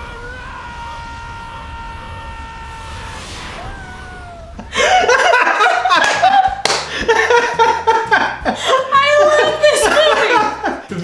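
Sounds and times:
low rumble: 0:00.0 - 0:07.0
man and woman laughing: 0:04.5 - 0:11.0.

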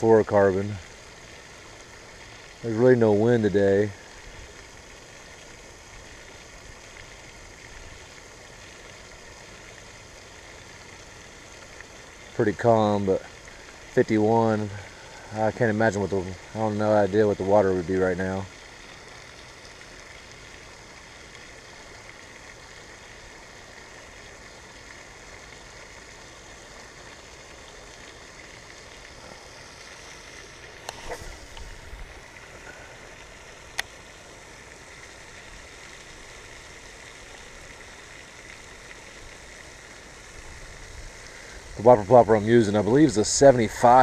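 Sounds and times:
fountain spray falling into water: 0:00.0 - 0:44.0.

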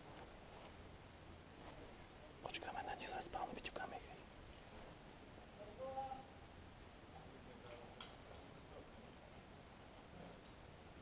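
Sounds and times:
person whispering: 0:02.4 - 0:04.2.

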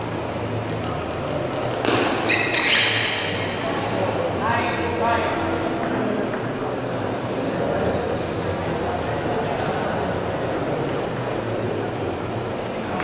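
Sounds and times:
table tennis ball hit: 0:01.8 - 0:02.3, 0:05.8 - 0:06.6.

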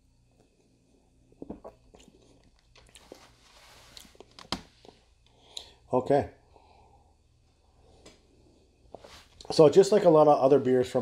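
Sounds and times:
mouth clicks and lip smacks: 0:01.4 - 0:03.2
soft hissing slurp: 0:01.6 - 0:04.3.

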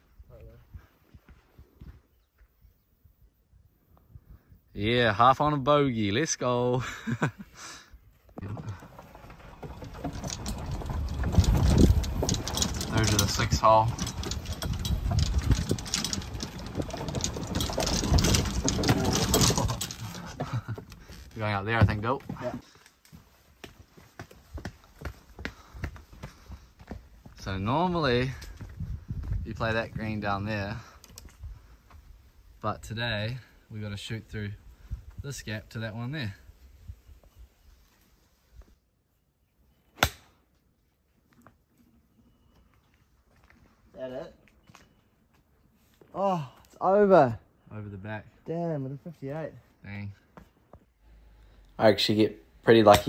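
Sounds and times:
golf cart motor running: 0:08.4 - 0:21.1
cart body rattling and knocking: 0:08.4 - 0:22.6.

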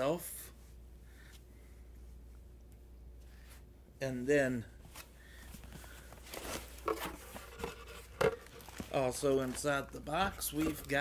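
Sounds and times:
packaging rustling: 0:06.1 - 0:11.0.

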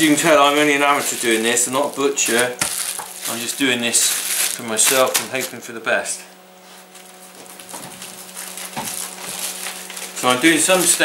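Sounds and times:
plastic bag rustling: 0:00.0 - 0:05.6, 0:06.6 - 0:11.0
steady low hum: 0:00.0 - 0:11.0.

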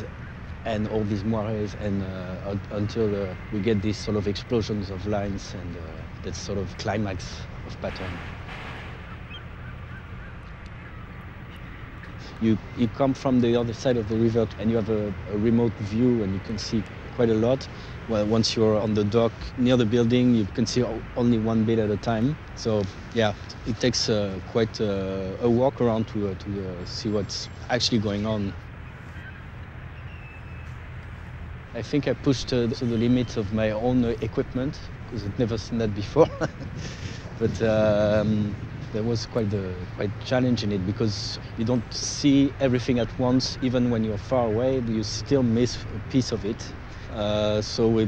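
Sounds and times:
low background hum: 0:00.0 - 0:48.0
low outdoor rumble: 0:00.0 - 0:48.0.

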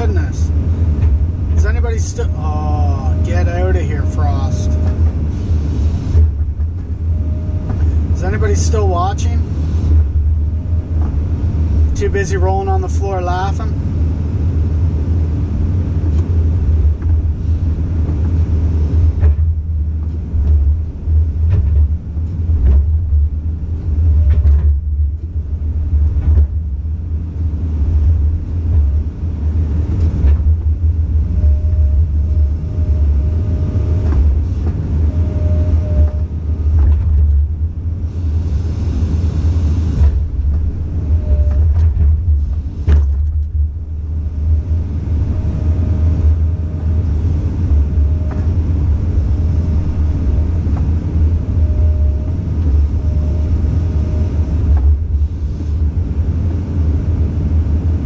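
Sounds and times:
excavator engine rumbling: 0:00.0 - 0:58.0
hydraulic whine: 0:00.0 - 0:58.0.

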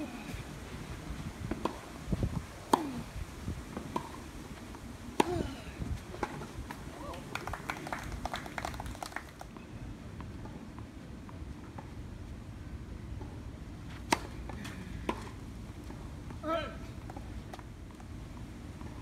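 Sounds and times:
tennis racket hitting ball: 0:02.7 - 0:03.1, 0:05.2 - 0:05.6, 0:14.1 - 0:15.3
crowd clapping: 0:07.1 - 0:09.5.

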